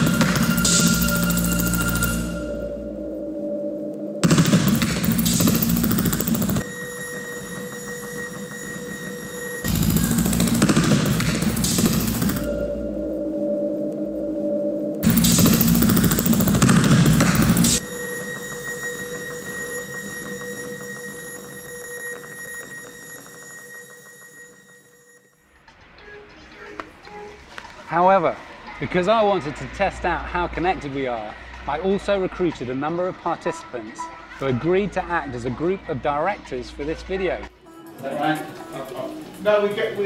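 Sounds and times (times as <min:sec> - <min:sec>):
held electronic tones: 0:00.0 - 0:25.3.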